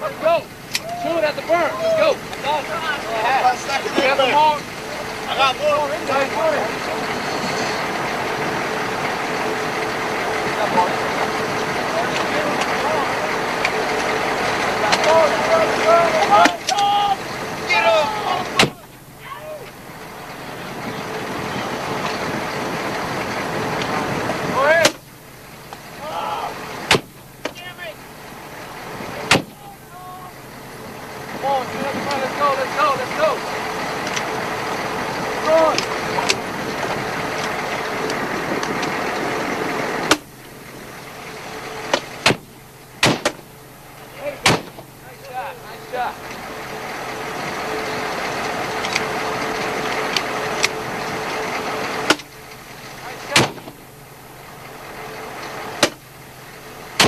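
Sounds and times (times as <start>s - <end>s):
men's voices: 0.0s - 25.1s, 25.7s - 40.1s, 43.6s - 52.1s, 52.9s - 53.8s
engine running steadily: 0.0s - 57.0s.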